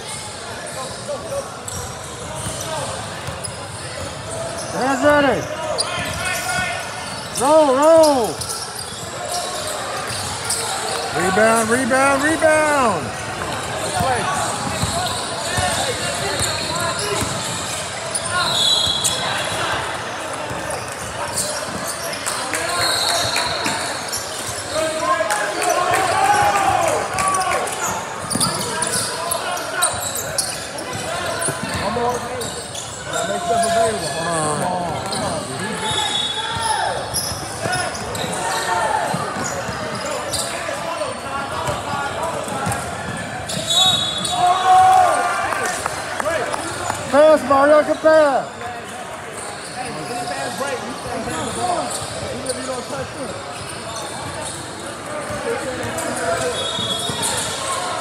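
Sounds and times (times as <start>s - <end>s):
sneakers squeaking: 0.0s - 45.8s, 47.7s - 58.0s.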